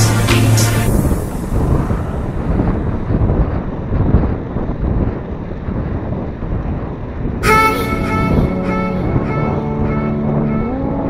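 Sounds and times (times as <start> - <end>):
wind and road noise: 0.0 - 11.0.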